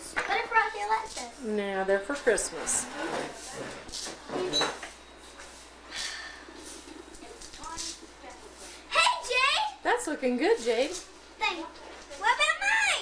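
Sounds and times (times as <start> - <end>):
children chattering: 11.4 - 13.0.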